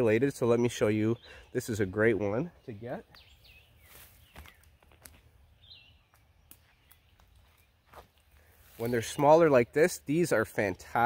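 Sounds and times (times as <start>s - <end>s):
bird chirp: 0.0s - 11.0s.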